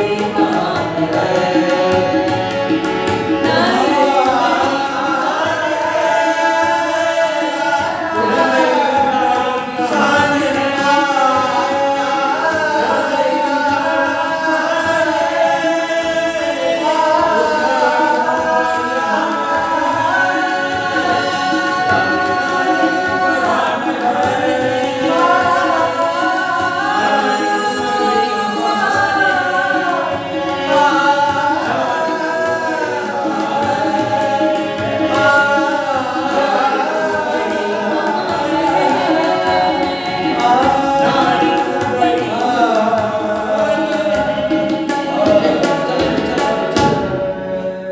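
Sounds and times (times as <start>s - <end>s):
harmonium: 0.0s - 47.9s
men singing together: 0.0s - 47.9s
tabla: 0.0s - 47.9s.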